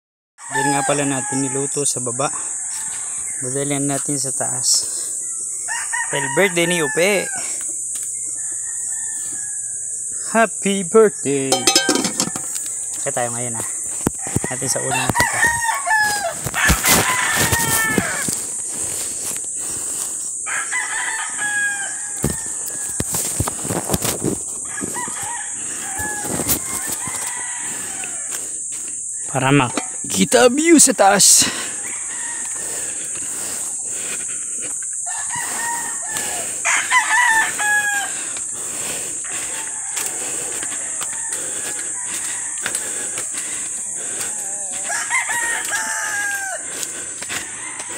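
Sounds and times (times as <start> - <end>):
rooster crowing: 0.4 - 3.7, 5.6 - 10.2, 11.5 - 12.7, 13.6 - 18.6, 20.4 - 23.4, 24.6 - 34.1, 34.7 - 47.9
high-pitched insect buzz: 4.2 - 47.9.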